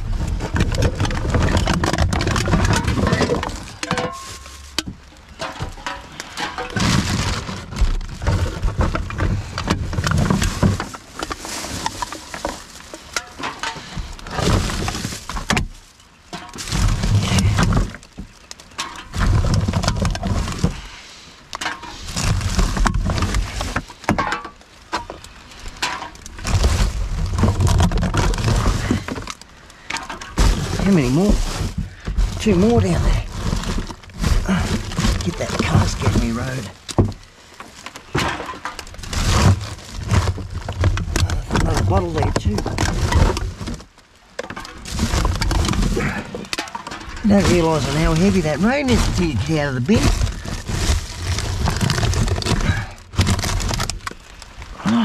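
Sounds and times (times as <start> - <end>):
plastic bags rustling and crinkling: 0.0 - 55.0
containers knocking and bumping: 0.4 - 11.3, 44.4 - 54.0.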